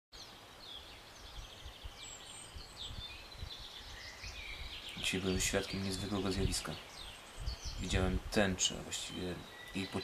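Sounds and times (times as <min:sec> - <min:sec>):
small birds chirping: 0:00.2 - 0:10.0.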